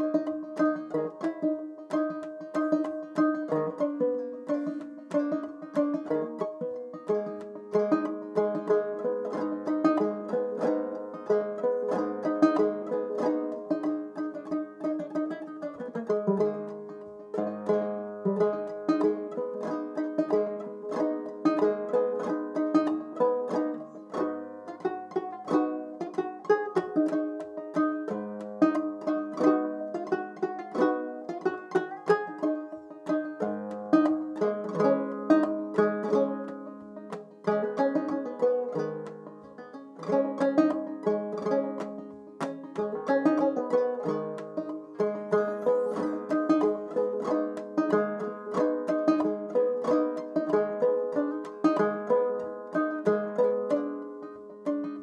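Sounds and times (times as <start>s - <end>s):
banjo playing: 0.0s - 55.0s
breaths: 45.4s - 46.4s.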